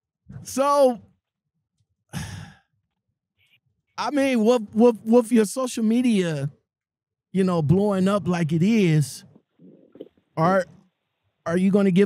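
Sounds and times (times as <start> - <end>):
person sighing: 2.1 - 2.7.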